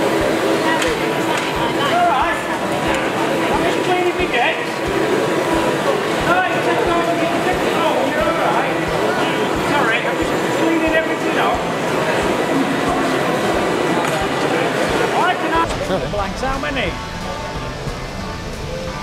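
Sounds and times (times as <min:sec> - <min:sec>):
wood lathe humming: 0:00.0 - 0:18.3
dust extractor humming: 0:00.0 - 0:19.0
indistinct crowd chatter: 0:00.0 - 0:19.0.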